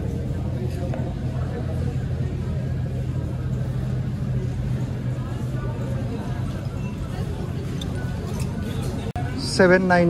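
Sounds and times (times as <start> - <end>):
indistinct chatter of shoppers: 0.0 - 10.0
steady low hum: 0.0 - 10.0.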